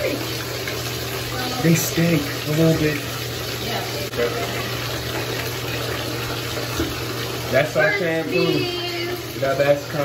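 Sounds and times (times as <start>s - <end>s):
faucet water pouring into tub: 0.0s - 10.0s.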